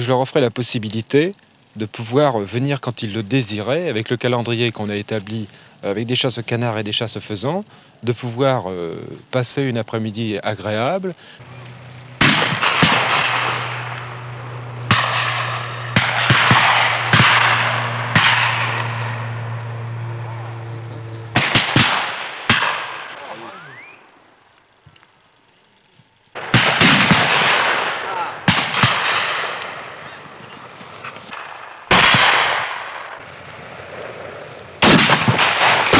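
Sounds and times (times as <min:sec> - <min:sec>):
low hum: 0:10.1 - 0:35.9
shotguns firing with echo: 0:11.4 - 0:23.3, 0:26.4 - 0:33.4, 0:34.8 - 0:35.9.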